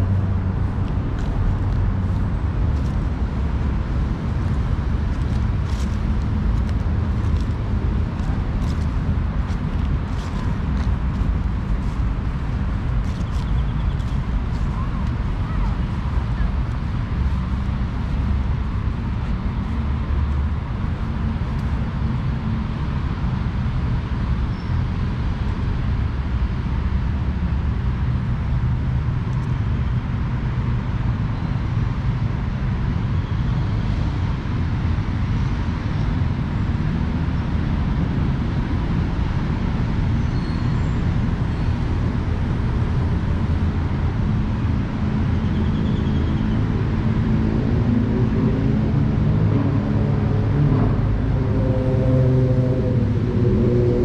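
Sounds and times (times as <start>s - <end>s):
distant road traffic rumble: 0.0s - 54.0s.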